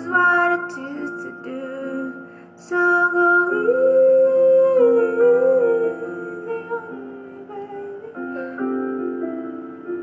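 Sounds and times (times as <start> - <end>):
soft musical backing: 0.0 - 10.0.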